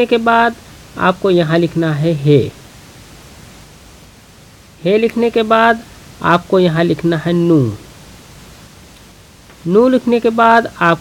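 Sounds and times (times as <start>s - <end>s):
man talking: 0.0s - 2.6s, 4.8s - 7.9s, 9.6s - 11.0s
low background hiss: 0.0s - 11.0s.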